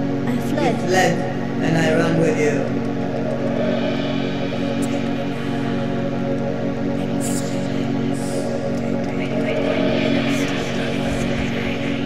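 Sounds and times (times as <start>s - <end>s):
droning synthesizer music: 0.0s - 12.0s.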